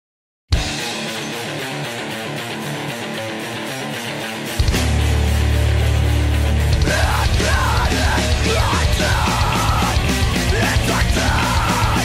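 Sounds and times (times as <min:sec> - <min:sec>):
electric guitar riff: 0:00.5 - 0:12.0.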